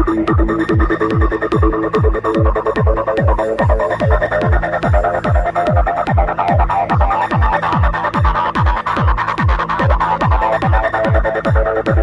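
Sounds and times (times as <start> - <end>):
busy synth line: 0.0 - 12.0
kick drum: 0.0 - 12.0
ticking hi-hats: 0.0 - 12.0.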